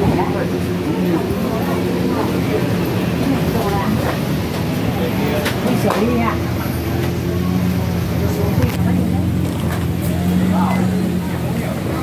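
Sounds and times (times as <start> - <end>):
vehicle engine idling: 0.0 - 12.0
voices of passersby: 0.0 - 12.0.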